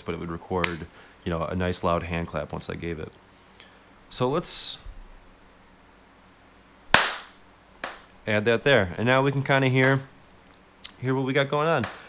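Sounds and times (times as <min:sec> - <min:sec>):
loud hand clap: 0:06.9 - 0:08.1.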